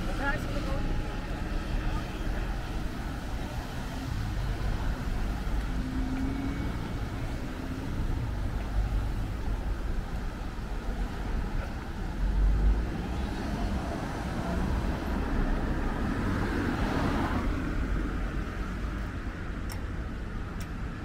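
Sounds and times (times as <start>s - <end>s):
passers-by talking faintly: 0.0s - 19.2s
traffic rumble: 0.0s - 21.0s.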